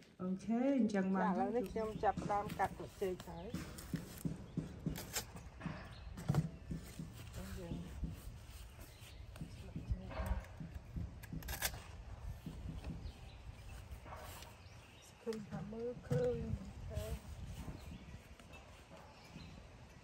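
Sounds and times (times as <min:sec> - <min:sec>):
woman talking quietly: 0:15.2 - 0:17.4.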